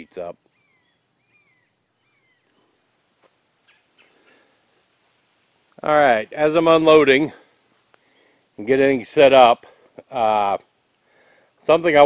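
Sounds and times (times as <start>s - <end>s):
high-pitched insect drone: 0.0s - 4.9s
faint ticks: 7.8s - 8.1s.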